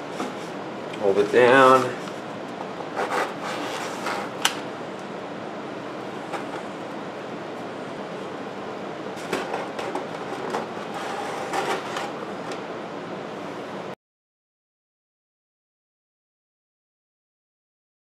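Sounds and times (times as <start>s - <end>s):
steady background hiss: 0.0s - 14.0s.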